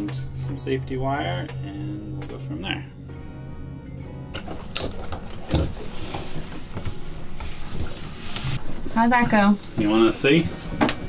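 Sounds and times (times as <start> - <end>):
objects being handled and set down: 4.4 - 11.0.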